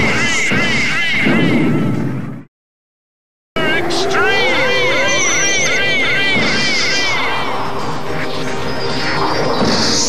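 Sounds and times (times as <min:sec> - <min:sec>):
cartoon music: 0:03.6 - 0:07.8.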